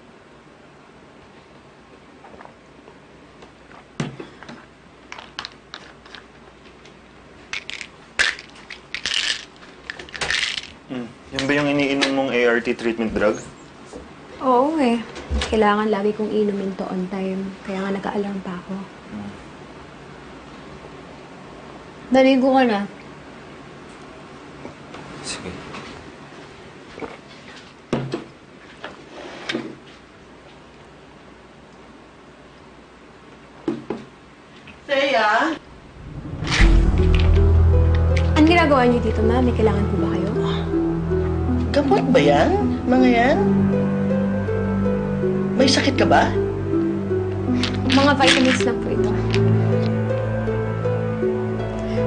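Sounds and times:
tablets rattling in a bottle: 7.6 - 10.8.

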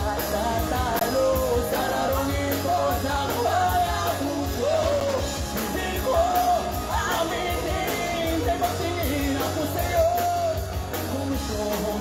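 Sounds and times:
bass guitar: 0.0 - 12.0
drums with cymbal hits: 0.0 - 12.0
electric guitar: 0.0 - 12.0
man singing: 0.0 - 12.0.

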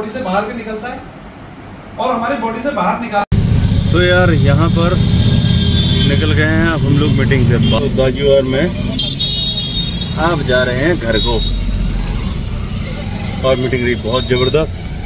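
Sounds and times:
car engine and road noise: 1.0 - 2.0, 3.3 - 15.0
person speaking: 5.9 - 9.1.

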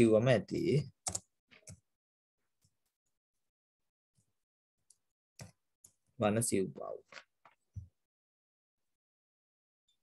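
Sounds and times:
keyboard keystroke clicks: 1.0 - 1.8.

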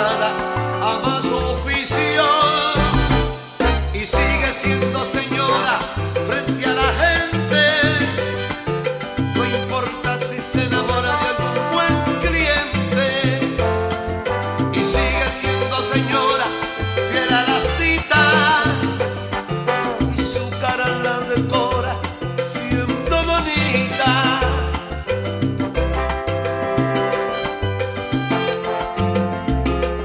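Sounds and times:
instrumental salsa music: 0.0 - 30.0.

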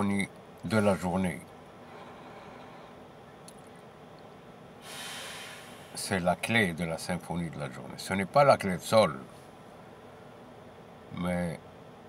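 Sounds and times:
man drawing a breath: 1.8 - 3.0, 4.8 - 6.0.

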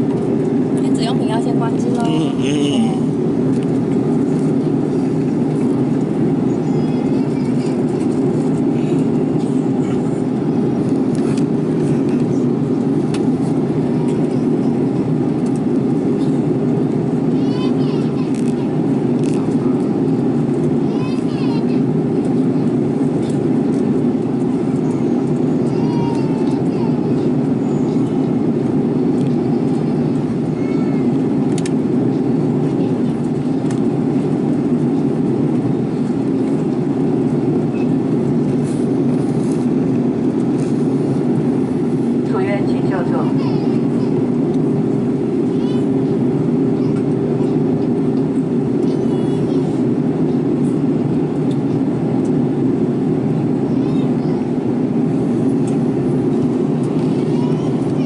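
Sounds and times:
airliner cabin engine rumble: 0.0 - 58.0.

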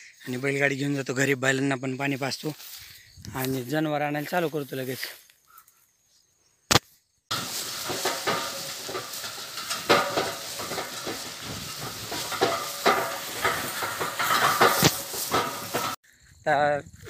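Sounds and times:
cart knocks and clatters: 7.3 - 16.0
cart rattling and rustling: 7.3 - 16.0.

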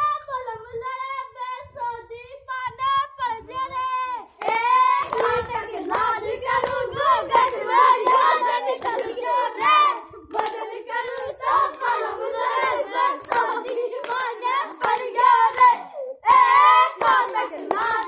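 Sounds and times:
children singing: 4.4 - 18.0
hand-clapping in time: 4.4 - 18.0.

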